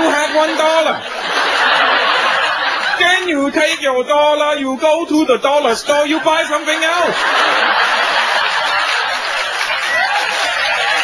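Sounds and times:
audience laughing: 0.0 - 3.9, 5.9 - 11.0.

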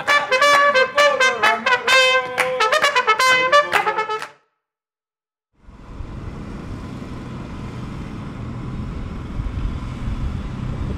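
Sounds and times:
trumpet tune: 0.0 - 4.5
outdoor background rumble: 5.6 - 10.9.

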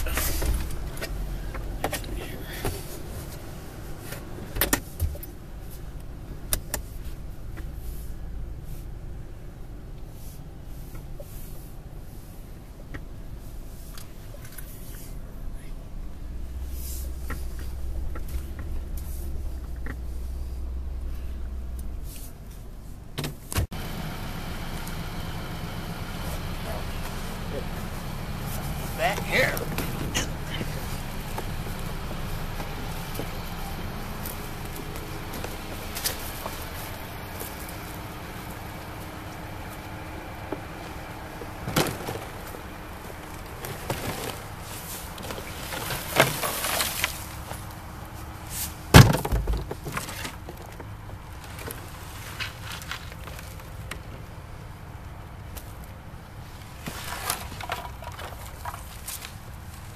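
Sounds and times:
car engine idling: 0.0 - 59.9
outdoor background noise: 0.0 - 59.9.

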